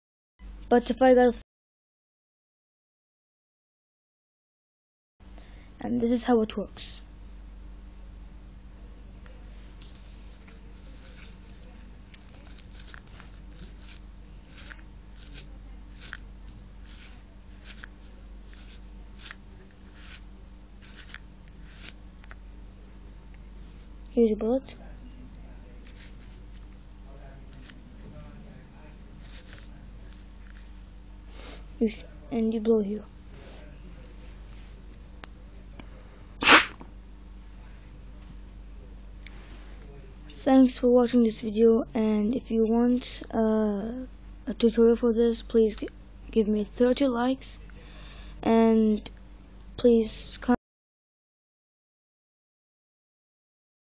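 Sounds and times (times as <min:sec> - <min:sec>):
faint low hum: 0:05.2 - 0:50.6
paper rustling and crinkling: 0:09.8 - 0:20.2, 0:20.8 - 0:22.0, 0:25.8 - 0:26.7, 0:29.2 - 0:30.7
puff of breath into paper pistol: 0:36.4 - 0:36.8.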